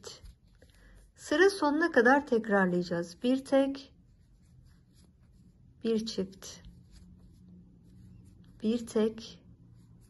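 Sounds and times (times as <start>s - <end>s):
person speaking: 0.0s - 9.9s
crochet hook rubbing and ticking: 3.2s - 10.0s.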